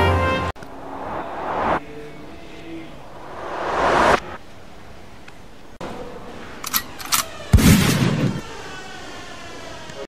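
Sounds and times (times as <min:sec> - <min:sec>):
steady low hum: 0:00.6 - 0:05.8
gunshot sound effect: 0:07.5 - 0:08.4.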